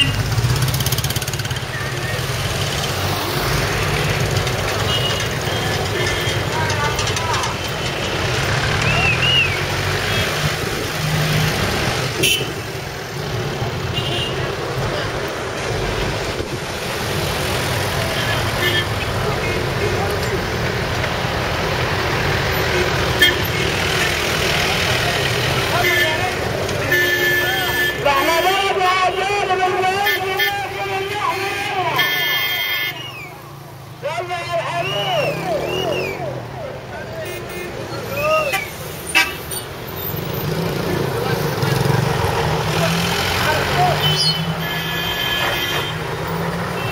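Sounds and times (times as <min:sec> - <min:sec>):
motorbike engines passing: 0:00.0 - 0:46.9
people's voices: 0:01.3 - 0:11.0, 0:17.6 - 0:39.6, 0:40.2 - 0:46.9
horn toots: 0:12.1 - 0:12.8, 0:18.0 - 0:19.1, 0:22.7 - 0:24.1, 0:25.7 - 0:33.3, 0:43.4 - 0:46.9.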